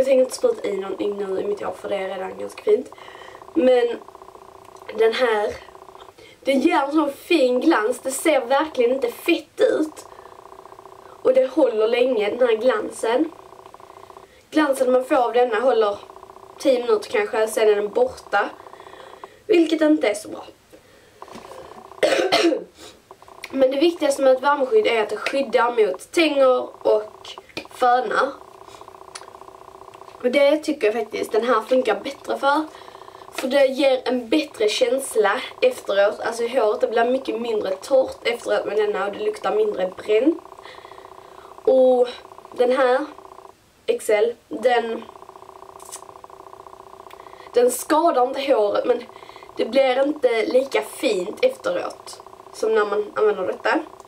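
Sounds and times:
finely pulsing hum: 0:00.0 - 0:54.0
girl coughing: 0:22.0 - 0:22.7.

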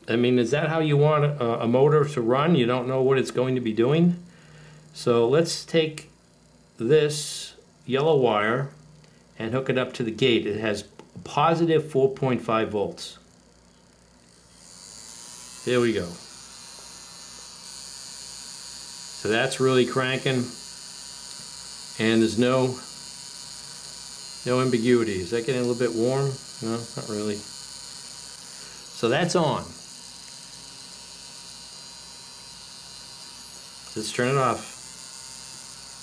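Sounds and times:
small motor whirring: 0:13.3 - 0:36.0.

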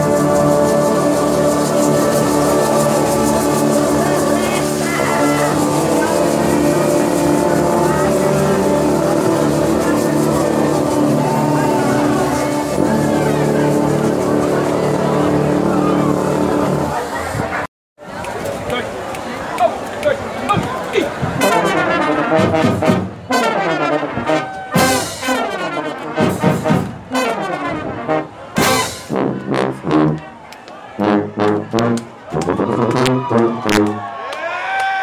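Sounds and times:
brass band playing chords: 0:00.0 - 0:17.7, 0:21.1 - 0:34.2.

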